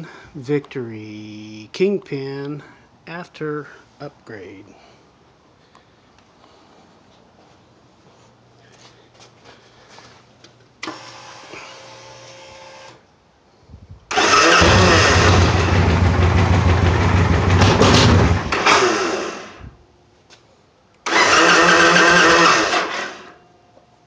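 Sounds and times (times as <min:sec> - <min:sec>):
motorcycle engine cranking: 0:14.1 - 0:19.4, 0:21.1 - 0:23.3
motorcycle engine running loud: 0:14.6 - 0:18.5.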